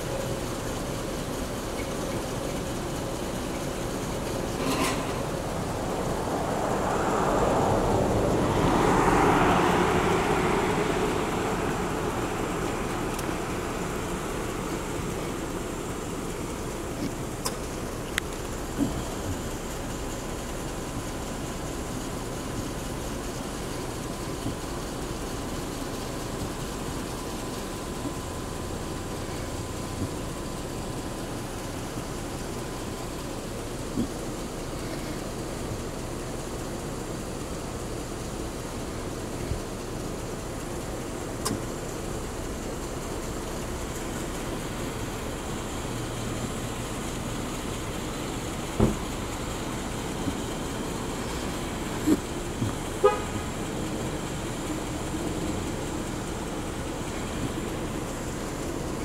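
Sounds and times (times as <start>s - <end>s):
outdoor night hum: 0.0s - 59.0s.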